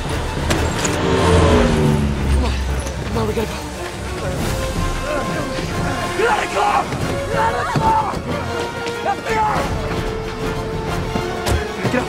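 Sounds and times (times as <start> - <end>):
engine passing by: 0.1 - 4.2.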